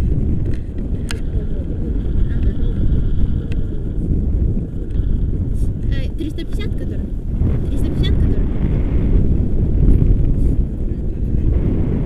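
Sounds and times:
wind buffeting microphone: 0.0s - 12.0s
person's voice: 5.8s - 8.4s.

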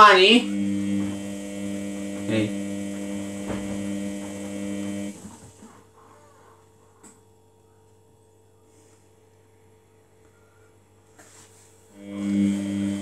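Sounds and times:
washing machine motor whine: 0.0s - 7.2s, 11.9s - 13.0s
washing machine drum knocks: 3.4s - 3.9s.

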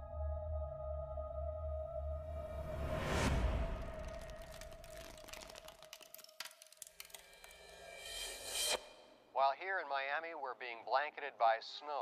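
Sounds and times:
faint ice crackling and ticking: 3.8s - 7.9s.

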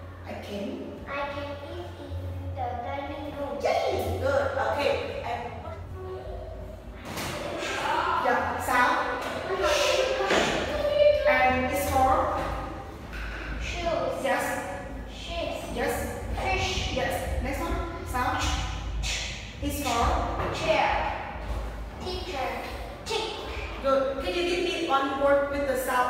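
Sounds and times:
low steady hum: 0.0s - 26.0s
child speaking into microphone: 1.0s - 4.2s, 5.5s - 7.6s, 13.6s - 14.2s, 15.0s - 16.8s, 22.0s - 23.8s.

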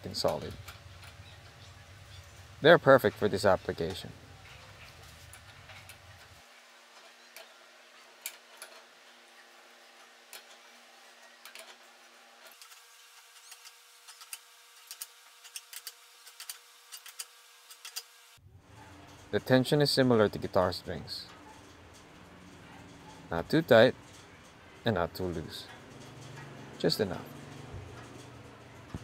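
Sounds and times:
light metal scraping: 0.0s - 29.0s.

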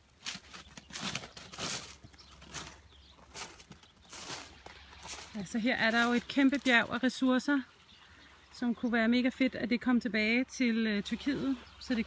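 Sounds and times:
footsteps crunching on gravel: 0.0s - 7.0s.

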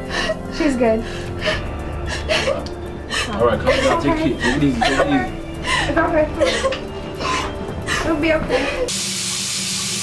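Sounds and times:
background music: 0.0s - 8.9s.

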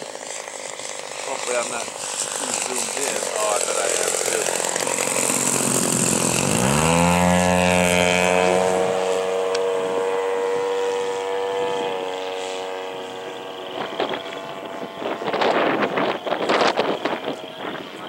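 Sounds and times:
model plane engine and propeller: 0.0s - 18.0s.

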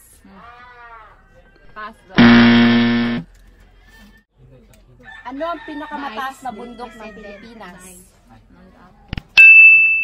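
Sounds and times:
game show buzzer: 2.2s - 3.2s.

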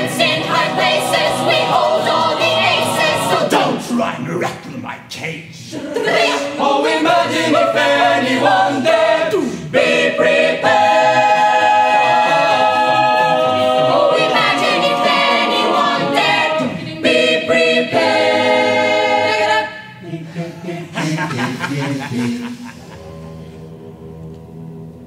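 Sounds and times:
a cappella choir singing: 0.0s - 4.0s, 5.7s - 25.0s.

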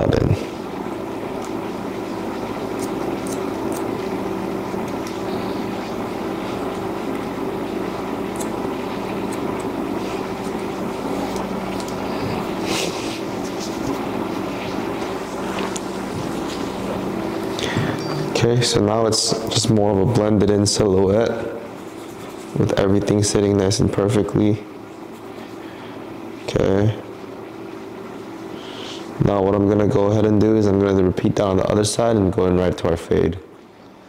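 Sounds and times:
steady mechanical hum: 0.0s - 34.0s
scissors snipping hair: 2.8s - 3.9s, 8.3s - 8.6s.

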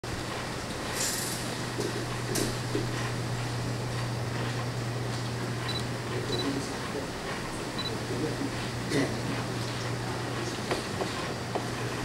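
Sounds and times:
low electrical hum: 0.1s - 12.0s.

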